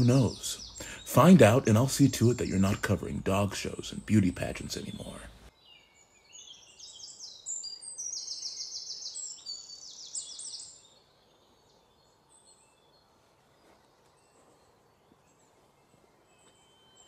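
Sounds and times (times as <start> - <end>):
songbird trilling: 0.0 - 12.9
faint woodland background: 0.0 - 17.0.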